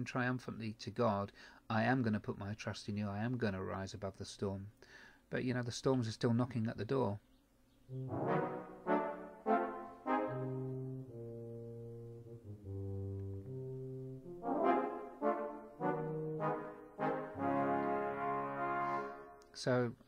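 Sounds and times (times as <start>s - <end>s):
brass band chords: 7.9s - 19.4s.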